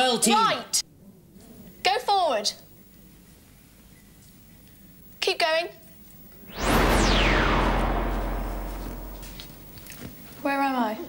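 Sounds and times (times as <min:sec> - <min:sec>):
deep rumble: 0:06.5 - 0:09.8
electronic whoosh: 0:06.5 - 0:09.8.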